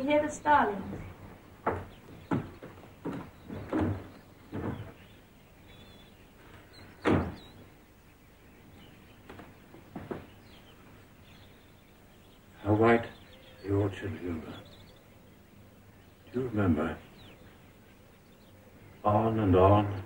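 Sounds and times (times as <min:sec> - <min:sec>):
window wooden knocks and thumps: 0:00.7 - 0:07.7, 0:08.8 - 0:11.5.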